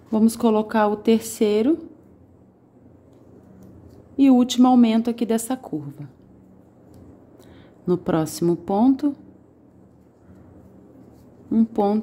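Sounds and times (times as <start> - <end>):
low background hum: 0.0 - 12.0
crochet hook working yarn: 9.8 - 12.0.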